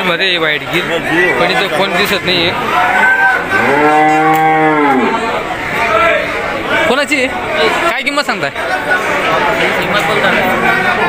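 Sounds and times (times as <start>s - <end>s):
cow mooing: 3.5s - 5.3s.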